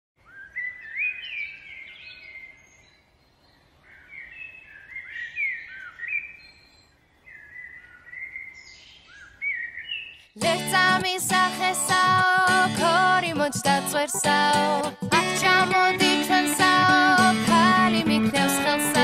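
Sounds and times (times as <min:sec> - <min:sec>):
songbird singing: 0:00.2 - 0:10.4.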